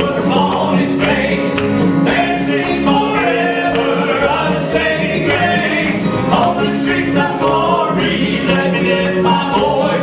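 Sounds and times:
low instrumental accompaniment: 0.0s - 10.0s
men singing in harmony: 0.0s - 10.0s.

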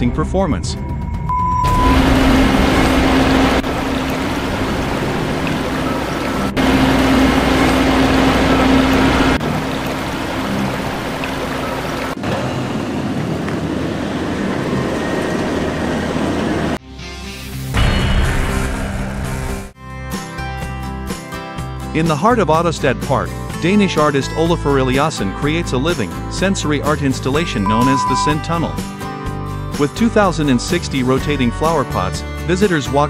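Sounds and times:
snow blower spraying snow: 1.7s - 12.5s
snow blower engine running: 1.7s - 16.8s.

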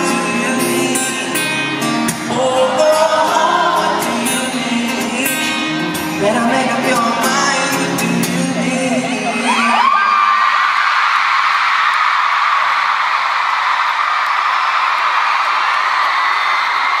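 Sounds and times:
singing with acoustic guitar: 0.0s - 10.2s
crowd cheering and screaming: 8.4s - 17.0s.

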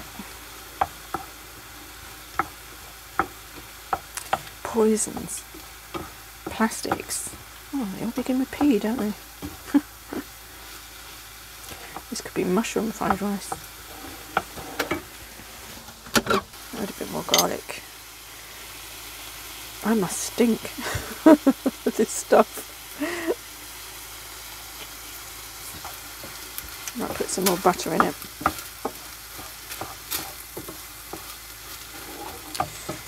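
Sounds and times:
food sizzling in a pan: 0.0s - 33.0s
wooden spatula stirring: 0.8s - 9.8s, 11.6s - 15.0s, 24.8s - 33.0s.

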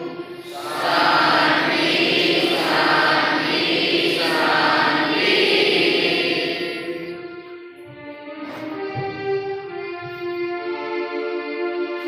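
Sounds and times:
group singing in unison: 0.0s - 7.3s.

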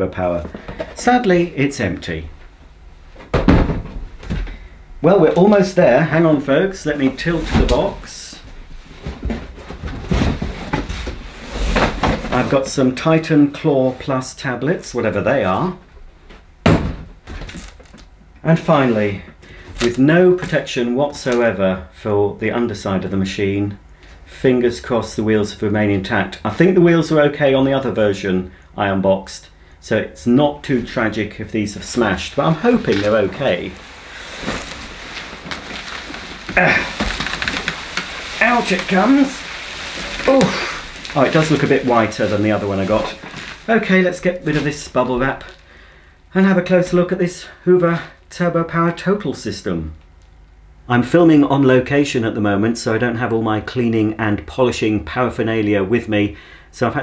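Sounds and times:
knocks on cardboard boxes: 3.3s - 4.5s, 16.6s - 17.4s
cardboard scraping and rustling: 8.8s - 12.8s, 31.8s - 45.6s.

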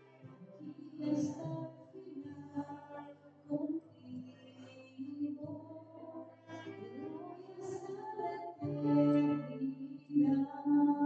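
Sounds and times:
keyboard: 0.0s - 11.0s.

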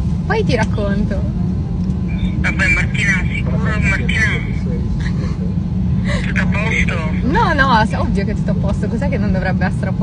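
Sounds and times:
airliner cabin rumble: 0.0s - 10.0s.

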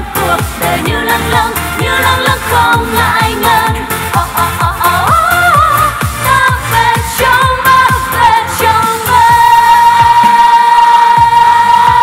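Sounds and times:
dance-pop backing track: 0.0s - 12.0s
women singing pop song: 0.0s - 12.0s.

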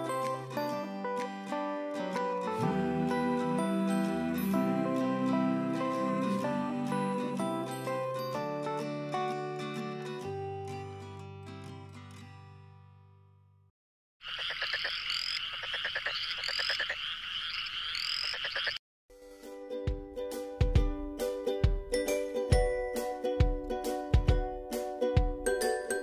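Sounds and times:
instrumental background music: 0.0s - 11.6s, 19.2s - 26.0s
rapid rattling call with chirps: 14.2s - 18.8s
tinkling chime-like music: 25.5s - 26.0s.

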